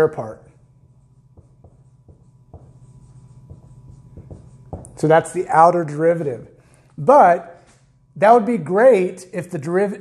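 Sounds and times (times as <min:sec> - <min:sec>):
steady low hum: 0:00.0 - 0:10.0
marker writing on whiteboard: 0:00.6 - 0:05.5.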